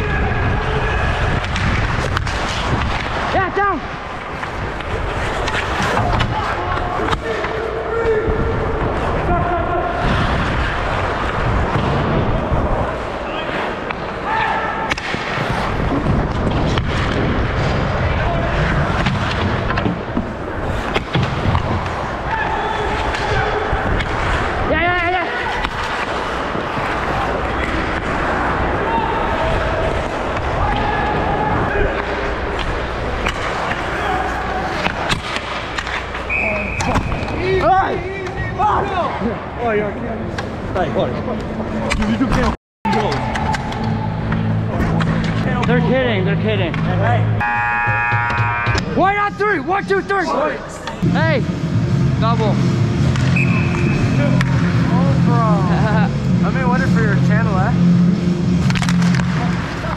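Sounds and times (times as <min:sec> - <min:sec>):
hockey sticks and puck clacking: 0:01.1 - 0:08.2, 0:12.9 - 0:17.7, 0:18.5 - 0:38.4, 0:41.4 - 0:45.9, 0:52.6 - 0:54.8, 0:58.5 - 0:59.9
skate blades scraping ice: 0:04.0 - 0:07.4, 0:25.4 - 0:31.0, 0:31.7 - 0:37.6
players shouting: 0:21.7 - 0:39.5, 0:47.4 - 0:51.6
referee whistle: 0:36.2 - 0:37.3, 0:47.4 - 0:48.8, 0:53.3 - 0:54.2.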